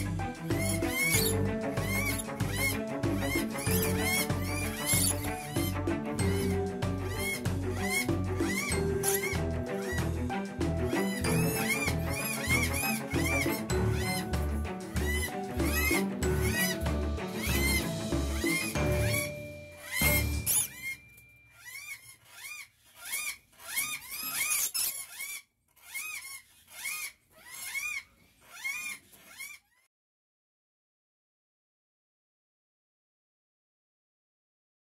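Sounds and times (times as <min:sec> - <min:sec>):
background music with beat: 0:00.0 - 0:20.6
lorikeets chirping: 0:00.0 - 0:21.0.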